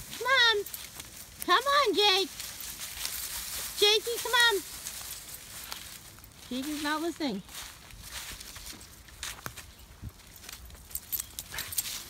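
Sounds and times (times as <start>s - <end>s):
footsteps on dry leaves: 0.0s - 12.0s.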